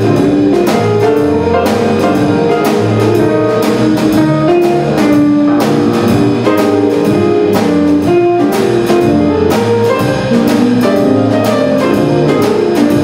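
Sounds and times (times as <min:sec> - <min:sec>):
drum cymbals keeping time: 0:00.0 - 0:13.0
grand piano: 0:00.0 - 0:13.0
upright double bass: 0:00.0 - 0:13.0.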